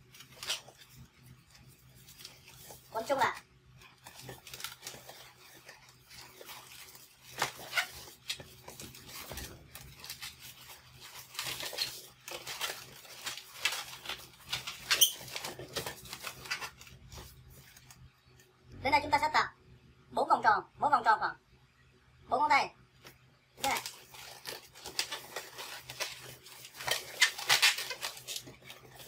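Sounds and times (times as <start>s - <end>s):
balloons squeaking and rubbing: 0.0s - 18.0s, 23.6s - 29.0s.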